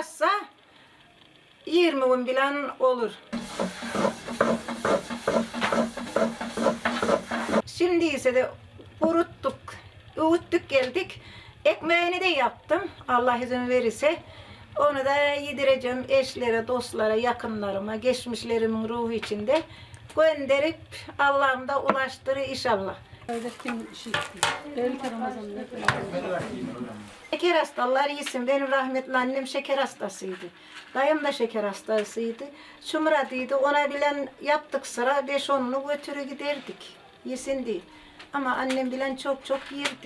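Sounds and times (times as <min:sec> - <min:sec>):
wooden stick knocking and scraping dough: 0:03.4 - 0:07.6.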